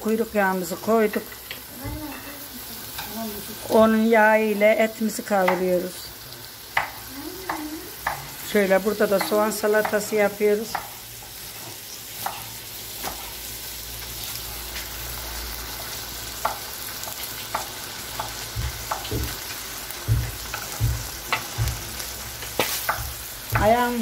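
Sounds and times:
meat frying in a pan: 0.0 - 24.0
low knocks: 20.0 - 21.9.

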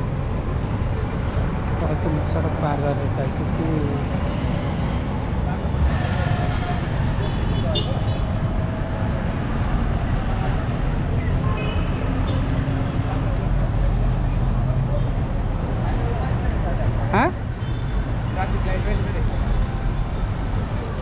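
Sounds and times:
low rumble of passing vehicles: 0.0 - 21.0.

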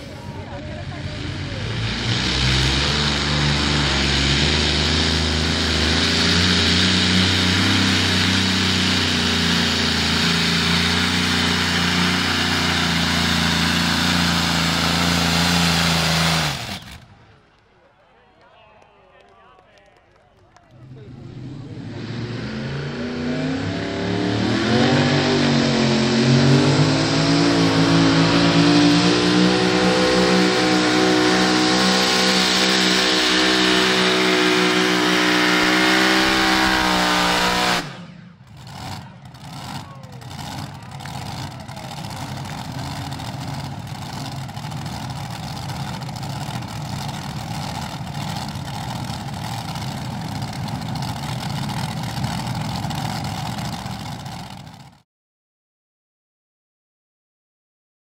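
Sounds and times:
engine running steadily: 0.0 - 17.4, 20.5 - 55.0
pulling tractor engines at full throttle: 0.0 - 18.0, 19.6 - 55.0.

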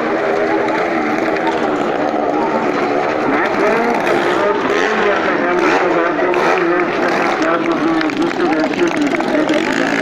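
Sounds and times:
car and motorcycle engines passing: 0.0 - 10.0.

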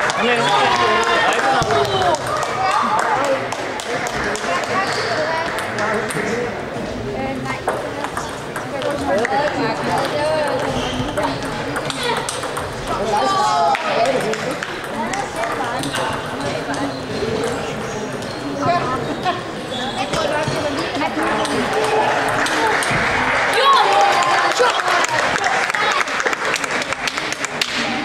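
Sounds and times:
chatter of voices: 0.0 - 28.0
table tennis balls clicking: 7.7 - 13.0, 14.0 - 17.6.

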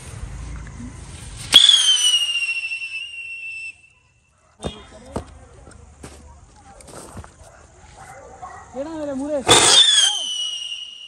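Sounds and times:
firework crack: 1.1 - 4.0, 9.4 - 11.0
firework whistle: 1.4 - 4.9, 9.5 - 11.0.

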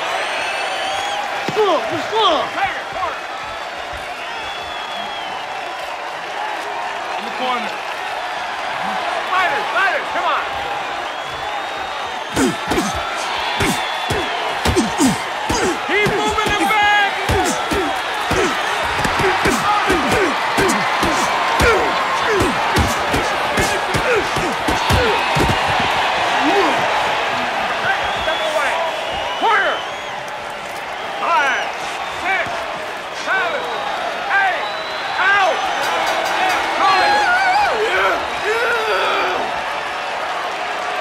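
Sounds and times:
crowd shouting: 0.0 - 41.0
whoops and yells: 11.0 - 27.0, 36.8 - 39.6
punch thuds: 12.4 - 26.0.

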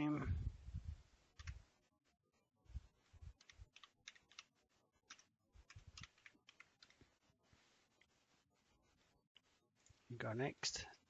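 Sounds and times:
computer keyboard typing: 1.4 - 1.6, 3.3 - 7.1.

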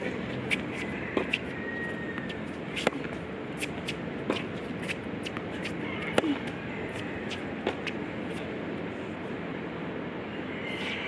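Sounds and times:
tennis ball bouncing: 0.4 - 8.5.

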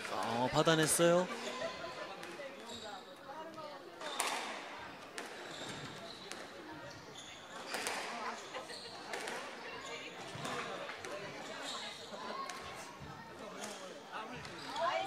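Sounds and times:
shoes squeaking on wooden floor: 5.2 - 10.7.

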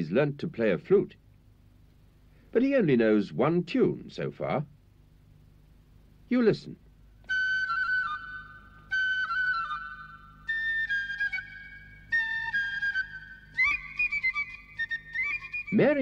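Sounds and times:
flute tune: 7.3 - 16.0.

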